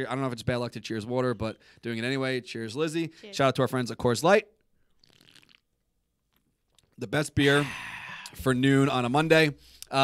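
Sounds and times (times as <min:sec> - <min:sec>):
sipping and swallowing: 0:04.8 - 0:07.0.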